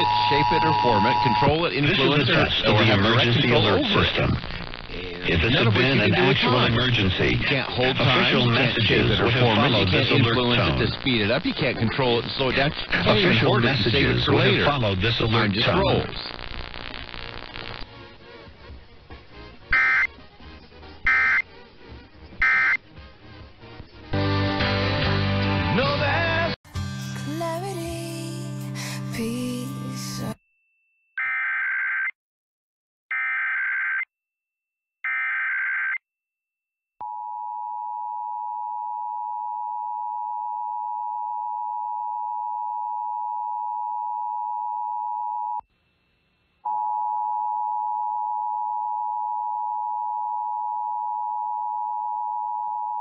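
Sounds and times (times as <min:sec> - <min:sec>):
faint radio noise: 0:00.0 - 0:22.8
two-tone alert signal: 0:19.8 - 0:20.1, 0:21.1 - 0:21.4, 0:22.4 - 0:22.8.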